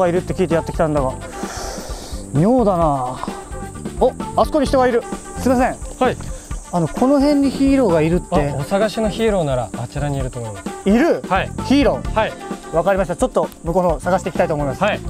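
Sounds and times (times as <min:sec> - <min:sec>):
high-pitched insect drone: 0:00.0 - 0:15.0
men talking: 0:00.0 - 0:15.0.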